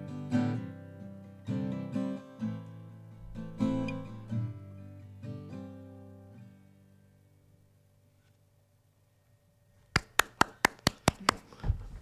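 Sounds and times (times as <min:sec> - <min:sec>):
person clapping: 0:09.9 - 0:11.6.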